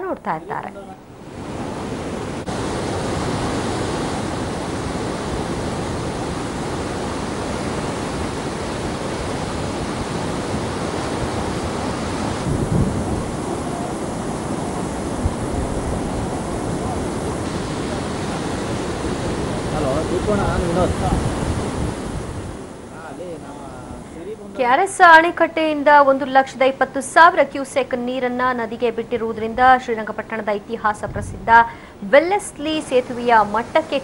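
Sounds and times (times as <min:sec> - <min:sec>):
flooded river rushing: 0:01.0 - 0:26.1, 0:31.6 - 0:34.0.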